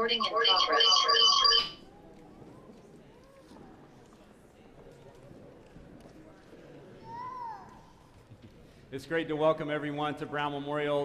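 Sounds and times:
pulsing bell-like ringing: 0:00.0 - 0:01.7.

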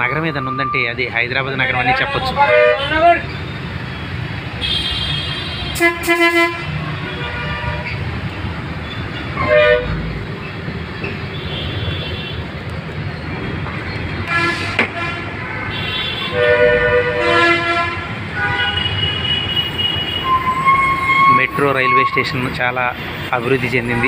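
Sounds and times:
bus engine and road noise: 0:00.0 - 0:24.0
vehicle horns honking: 0:02.2 - 0:03.4, 0:04.6 - 0:08.0, 0:09.3 - 0:10.0, 0:11.3 - 0:12.5, 0:14.3 - 0:22.5.

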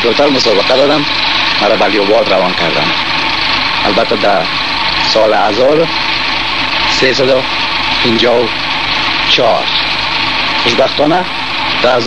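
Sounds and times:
steady hiss: 0:00.0 - 0:12.0
man speaking: 0:10.6 - 0:12.0.

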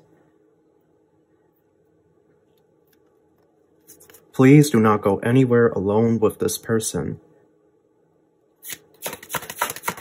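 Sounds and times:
cards shuffled by hand: 0:08.6 - 0:10.0.

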